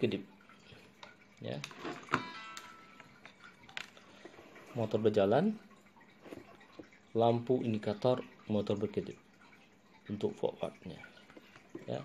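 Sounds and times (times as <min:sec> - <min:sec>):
person speaking: 0:10.1 - 0:12.0.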